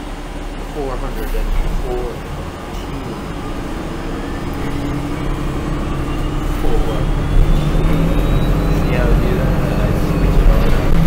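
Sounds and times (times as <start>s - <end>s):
bus engine hum: 0.0s - 11.0s
thin rising whine: 0.0s - 11.0s.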